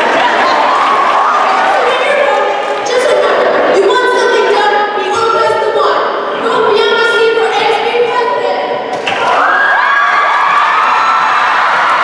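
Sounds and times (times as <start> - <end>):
children cheering and screaming: 0.0 - 3.8, 9.2 - 12.0.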